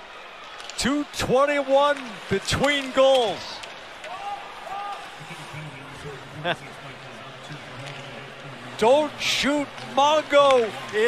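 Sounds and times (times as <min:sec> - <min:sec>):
crowd murmur: 0:04.0 - 0:11.0.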